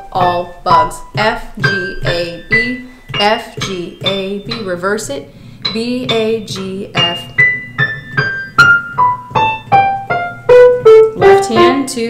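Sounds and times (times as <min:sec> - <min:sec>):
descending piano notes: 0:00.0 - 0:12.0.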